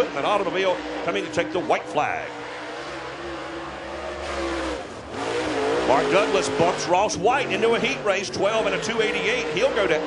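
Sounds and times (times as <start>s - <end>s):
race car engine at speed: 0.0s - 10.0s.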